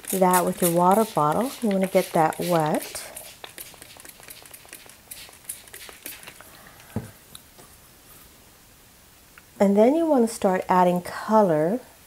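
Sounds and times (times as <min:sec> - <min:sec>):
spray bottle squirts: 0:00.0 - 0:06.5.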